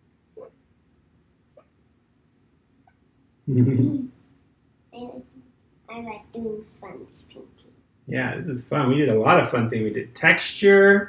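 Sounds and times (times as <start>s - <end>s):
faint short sounds: 8.1s - 11.0s.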